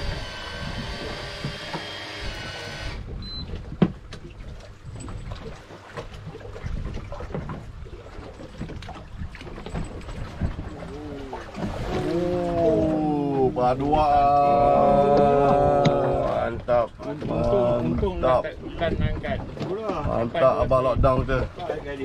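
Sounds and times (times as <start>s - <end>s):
water against boat hull: 0.0s - 22.0s
voices: 10.7s - 22.0s.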